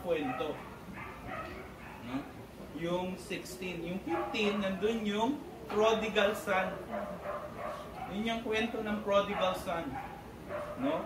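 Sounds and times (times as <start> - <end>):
man speaking through microphone: 0.0 - 0.7, 2.0 - 7.0, 8.0 - 10.0.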